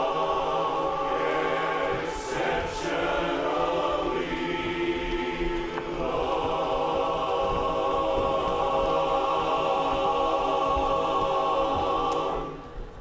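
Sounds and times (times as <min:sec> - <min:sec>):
men's chorus singing a cappella: 0:00.0 - 0:12.8.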